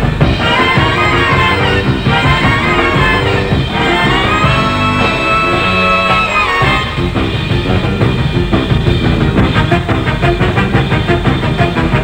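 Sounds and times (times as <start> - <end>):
drum kit beat: 0.0 - 12.0
jazz big band playing: 0.0 - 12.0
saxophone section: 0.3 - 7.3.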